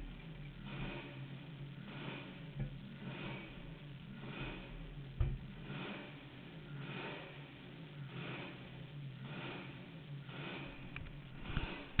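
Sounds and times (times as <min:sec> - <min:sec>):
low bumps: 0:00.0 - 0:12.0.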